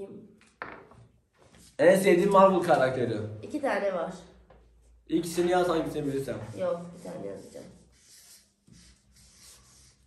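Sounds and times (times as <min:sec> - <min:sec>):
marker writing on paper: 0:06.4 - 0:10.0.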